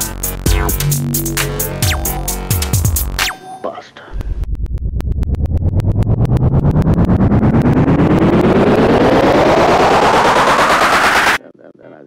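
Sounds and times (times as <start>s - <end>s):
synth riser sweeping upward: 0.4s - 3.4s, 4.6s - 11.4s.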